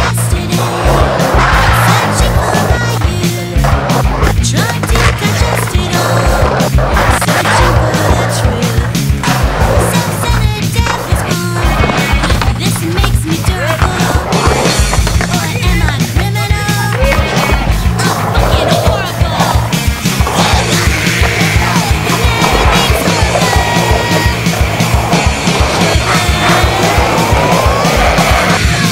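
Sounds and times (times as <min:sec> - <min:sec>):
music with bass line and beat: 0:00.0 - 0:28.9
skateboard wheels rolling on concrete: 0:00.0 - 0:28.9.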